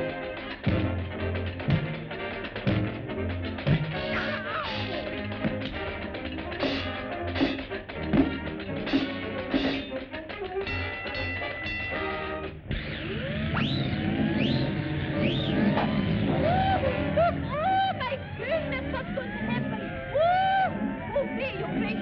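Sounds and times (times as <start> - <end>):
orchestral staccato music: 0.0 - 12.7.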